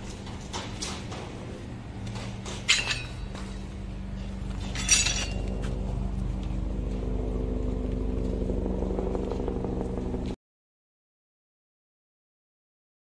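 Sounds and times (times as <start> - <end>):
steady motor hum: 0.0 - 10.4
sharp metallic clink: 2.6 - 3.6, 4.6 - 5.6.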